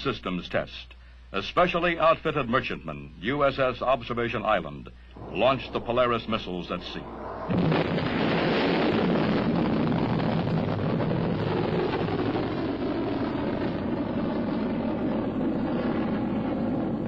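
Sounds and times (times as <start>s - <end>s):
rocket motor burning: 7.0s - 17.0s.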